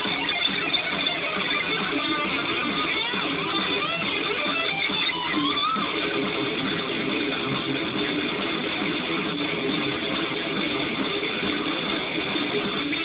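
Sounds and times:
distorted electric guitar metal: 0.0 - 13.0.

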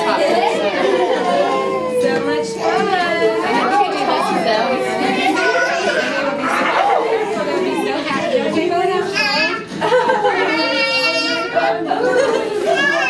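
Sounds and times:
adults and toddlers chattering: 0.0 - 13.0.

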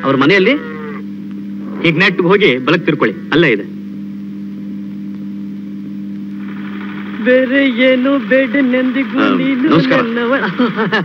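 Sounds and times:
steady low hum of two tones: 0.0 - 11.0.

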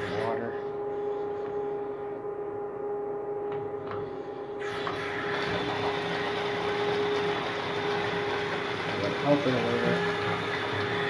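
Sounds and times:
electric water pump humming: 0.0 - 11.0
water rushing in toilet bowl: 4.6 - 11.0.

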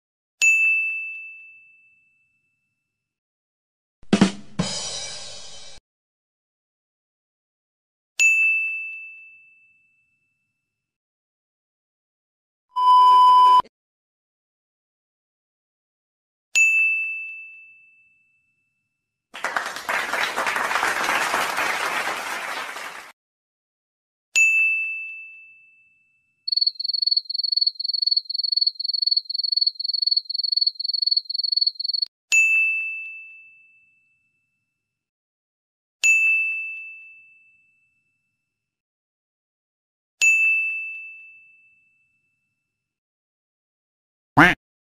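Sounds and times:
crickets chirping: 26.5 - 32.0.

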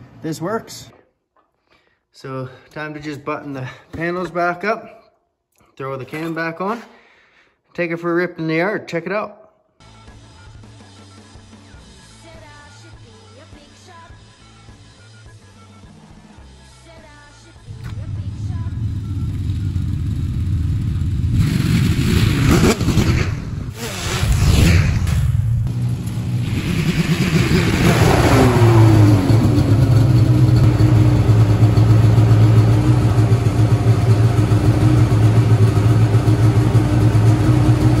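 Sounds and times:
snowmobile engine revving and idling: 17.8 - 24.4, 25.7 - 38.0.

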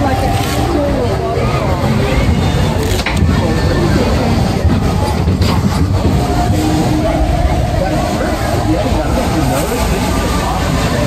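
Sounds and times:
roller coaster low rumble: 0.0 - 11.0.

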